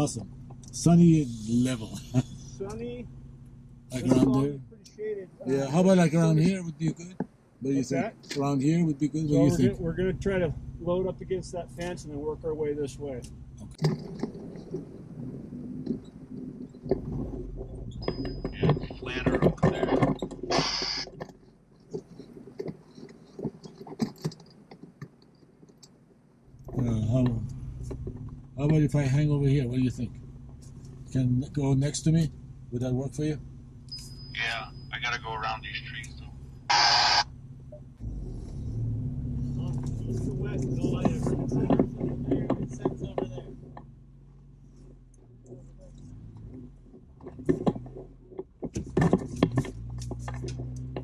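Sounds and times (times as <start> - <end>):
vehicle engine and road rumble: 0.0 - 51.0
knocks and rattles: 13.2 - 29.0, 39.6 - 51.0.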